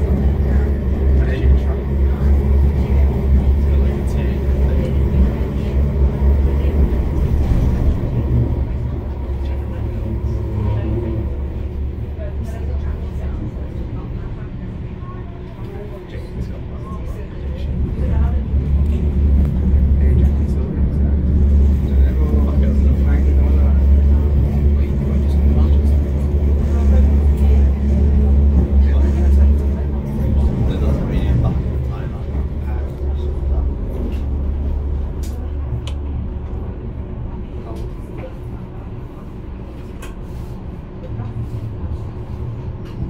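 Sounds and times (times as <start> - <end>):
tram motors and wheels humming: 0.0 - 43.0.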